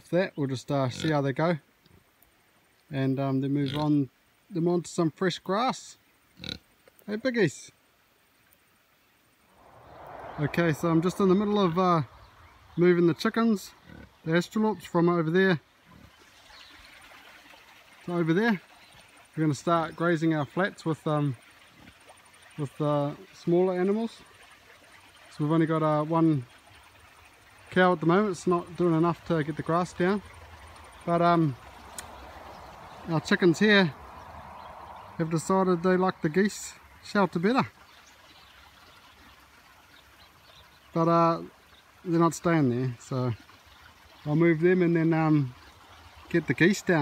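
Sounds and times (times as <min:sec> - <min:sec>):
faint rushing hiss: 0:01.4 - 0:38.6.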